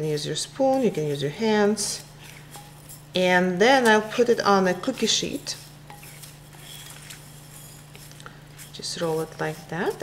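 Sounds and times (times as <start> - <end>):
steady low hum: 0.0 - 10.0
spatula scraping ceramic bowl: 0.2 - 10.0.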